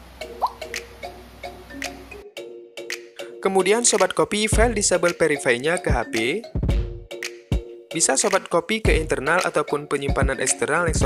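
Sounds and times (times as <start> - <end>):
light instrumental music: 0.0 - 11.0.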